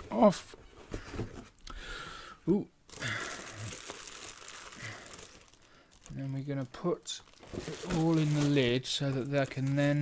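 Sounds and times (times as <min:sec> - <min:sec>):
plastic bags crinkling: 0:02.9 - 0:10.0.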